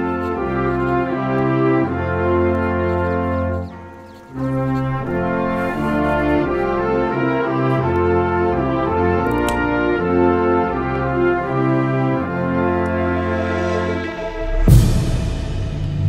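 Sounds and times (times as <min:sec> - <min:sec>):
orchestral brass chords: 0:00.0 - 0:16.0.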